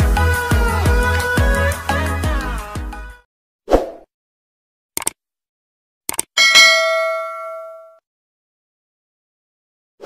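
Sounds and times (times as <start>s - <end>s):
short mouse clicks: 5.0s - 5.2s, 6.1s - 6.3s
notification bell ding: 6.4s - 8.0s.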